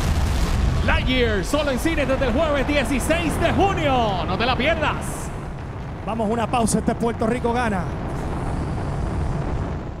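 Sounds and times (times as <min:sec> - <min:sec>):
dense rumbling noise: 0:00.0 - 0:10.0.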